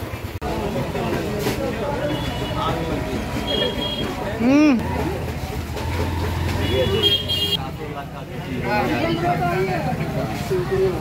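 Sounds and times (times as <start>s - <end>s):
vehicle engine rumbling: 0.0s - 8.3s
car horn: 6.4s - 7.6s.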